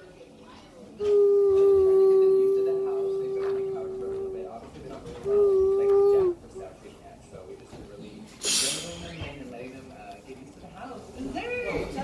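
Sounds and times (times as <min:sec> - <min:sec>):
voice-like hoot: 0:01.0 - 0:04.6, 0:05.2 - 0:06.6.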